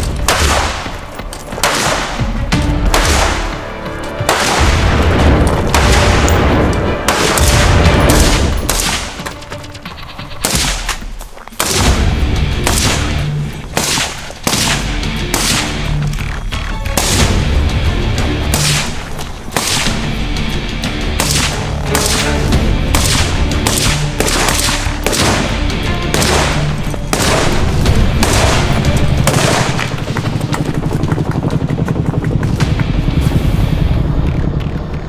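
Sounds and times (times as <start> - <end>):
rifle shots: 0.2 - 3.6, 4.2 - 9.3, 10.3 - 11.0, 11.6 - 16.0, 18.4 - 20.1, 21.1 - 30.0.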